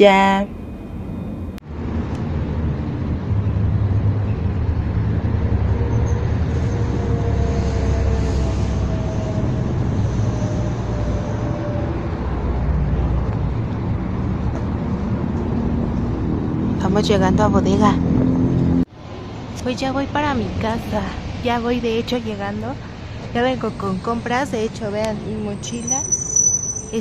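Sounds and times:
traffic rumble: 0.0 - 27.0.

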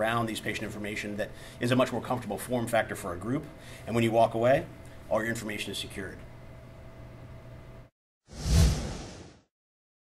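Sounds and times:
whoosh with deep boom: 8.3 - 9.4.

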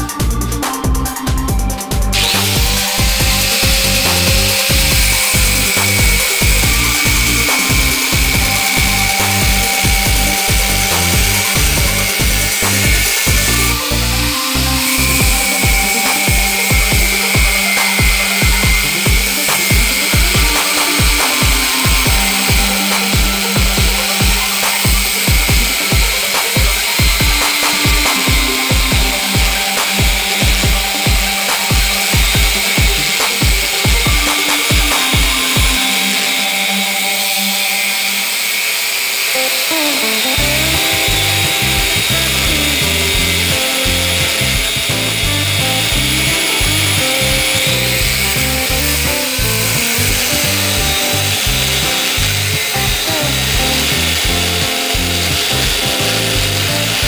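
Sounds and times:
angle grinder cutting steel: 0.0 - 57.0
background music with steady beat: 0.0 - 57.0.

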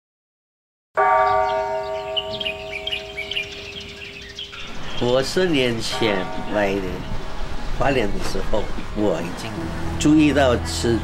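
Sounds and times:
bell ringing: 1.0 - 8.1
small birds chirping: 1.2 - 9.8.

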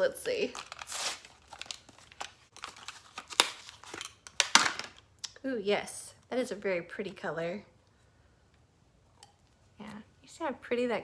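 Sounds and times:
plastic packaging crinkling: 0.2 - 5.0.

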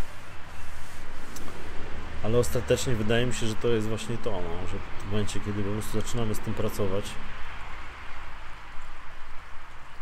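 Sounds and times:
even outdoor hiss: 0.0 - 10.0.

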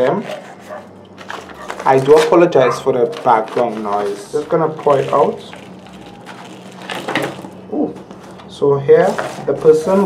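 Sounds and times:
plant pot scraping and rattling: 0.1 - 7.6, 9.0 - 10.0.

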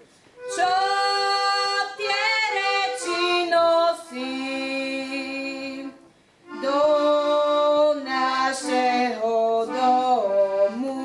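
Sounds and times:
girl singing unaccompanied: 0.4 - 11.0.

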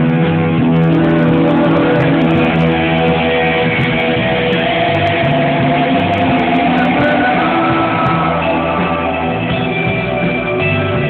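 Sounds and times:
held guitar notes ringing: 0.0 - 11.0
live rock band playing: 0.0 - 11.0.

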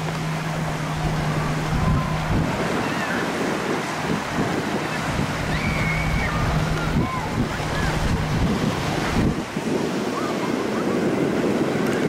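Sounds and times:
surf: 0.0 - 12.0
wind noise on microphone: 0.0 - 12.0
distant shouts and voices: 0.8 - 4.0, 4.7 - 8.9, 10.0 - 11.2.

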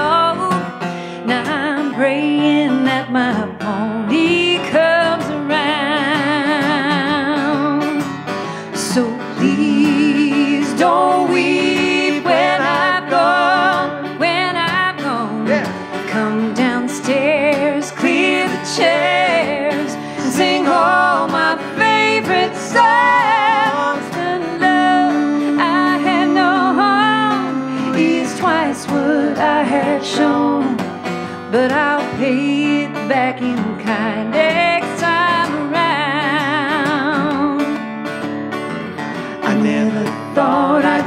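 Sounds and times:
strummed acoustic guitar: 0.0 - 41.0
person singing with vibrato: 8.6 - 37.7, 39.4 - 41.0.

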